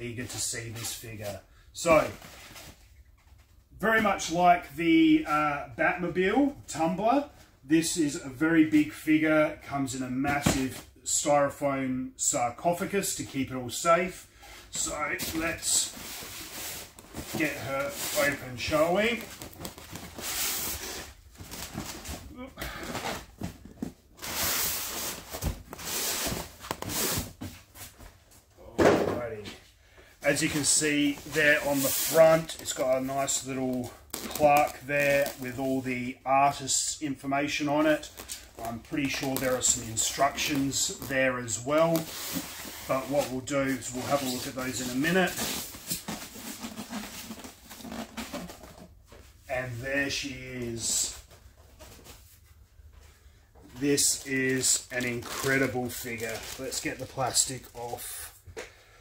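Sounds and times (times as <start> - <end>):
cardboard scraping against foam: 14.8 - 22.0, 30.5 - 33.2, 41.8 - 48.9
styrofoam lid scraping and squeaking: 30.5 - 35.6, 43.8 - 49.0.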